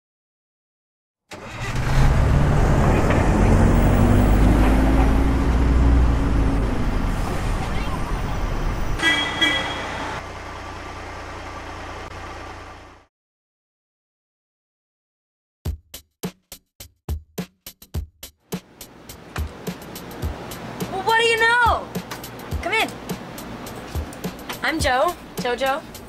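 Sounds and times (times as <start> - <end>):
bus engine revving: 1.3 - 13.1, 18.6 - 21.0, 21.9 - 26.0.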